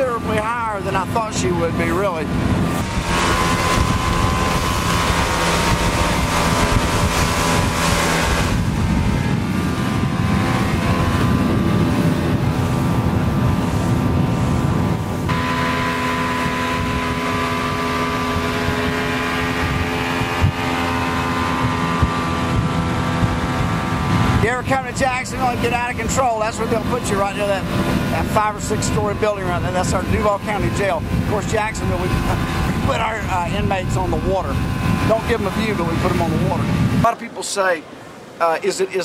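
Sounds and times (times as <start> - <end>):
wind on microphone: 0.0 - 38.4
boat engine running hard: 0.0 - 39.0
water rushing: 0.0 - 39.0.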